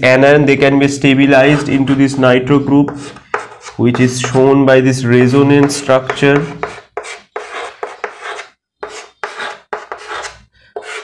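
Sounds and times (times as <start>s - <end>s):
chalk scratching on chalkboard: 2.8s - 4.4s, 5.6s - 11.0s.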